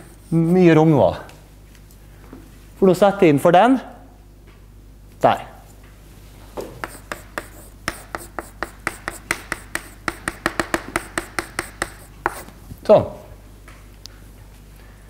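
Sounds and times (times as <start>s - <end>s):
chalk tapping and scraping: 0.0s - 0.8s, 6.7s - 12.6s.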